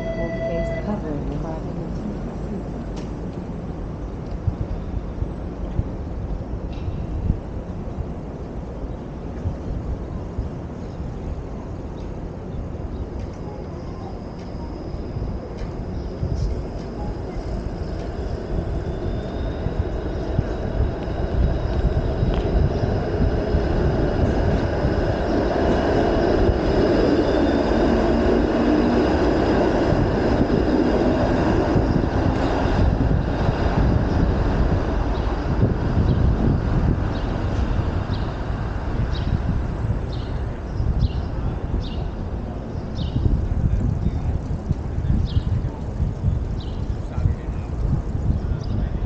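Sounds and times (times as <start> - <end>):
streetcar rumbling with high whine: 0.0 - 49.0.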